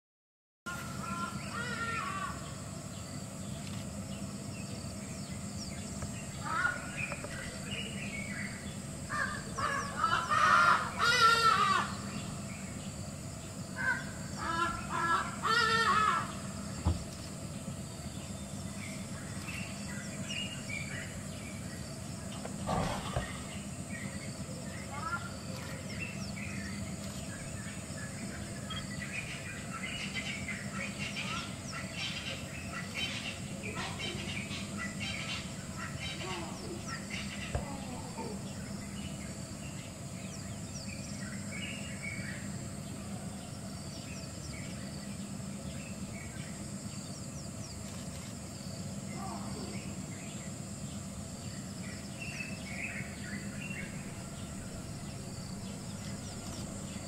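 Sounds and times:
birds calling in short notes: 0:00.7 - 0:57.0
steady low hum: 0:00.7 - 0:57.0
downward-curving bird call: 0:09.1 - 0:12.4, 0:13.8 - 0:16.9.

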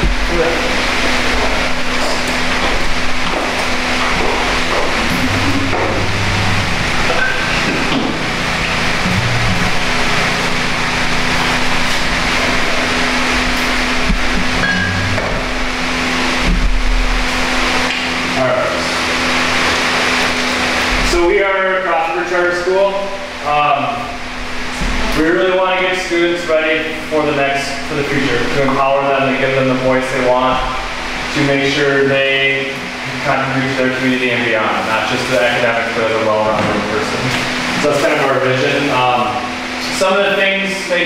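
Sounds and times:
steady low hum: 0:00.0 - 0:41.0.

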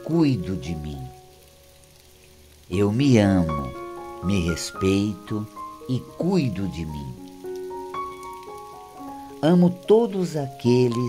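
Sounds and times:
rain falling on grass: 0:00.0 - 0:11.0
soft background music: 0:00.0 - 0:11.0.

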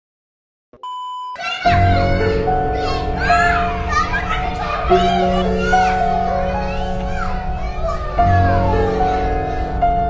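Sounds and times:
children shouting excitedly: 0:01.4 - 0:10.0.

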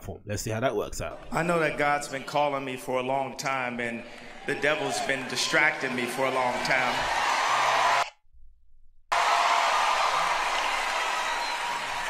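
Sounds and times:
crowd applauding and cheering: 0:04.0 - 0:08.1, 0:09.1 - 0:12.0.

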